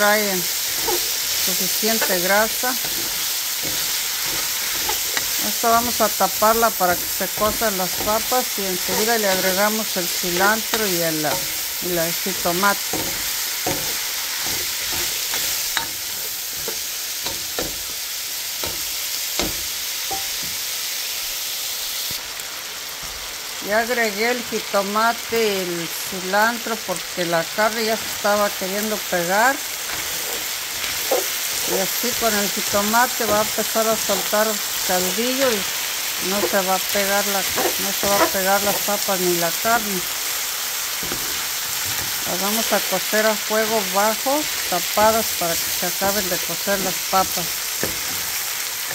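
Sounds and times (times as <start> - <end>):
food sizzling in a frying pan: 0.0 - 48.9
spatula scraping a pan: 0.1 - 18.0, 27.8 - 40.2, 40.9 - 42.9.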